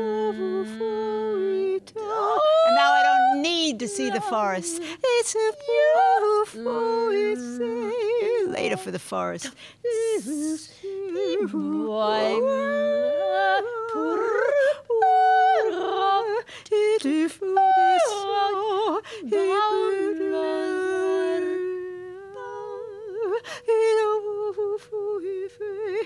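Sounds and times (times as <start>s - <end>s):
wordless singing: 0.0s - 26.0s
person humming: 9.9s - 16.2s.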